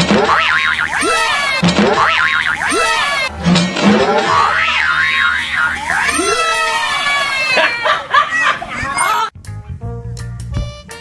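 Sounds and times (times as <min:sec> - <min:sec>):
cartoon boing sound effects: 0:00.1 - 0:03.3, 0:04.1 - 0:06.4
wobbling warbling pitch slides: 0:00.3 - 0:06.4.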